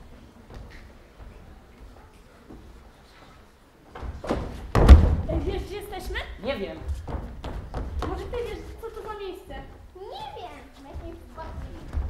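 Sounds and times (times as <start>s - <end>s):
heavy thump on stage: 4.0s - 5.4s.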